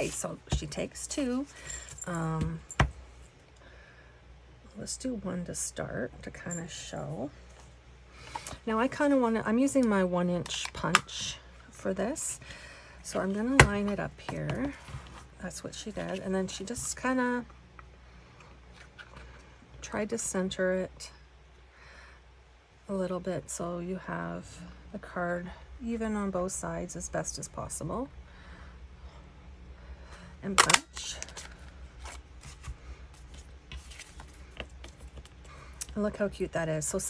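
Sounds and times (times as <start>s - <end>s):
low room hum: 0.0s - 37.0s
paper rustling: 31.2s - 35.3s.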